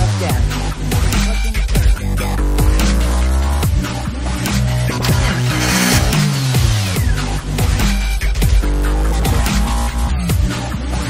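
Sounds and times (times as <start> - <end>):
electronic dance music: 4.7 - 8.2.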